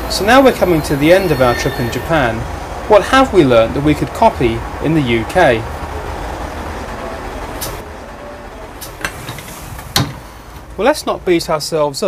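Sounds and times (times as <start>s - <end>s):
train rumbling in motion: 0.0s - 11.8s.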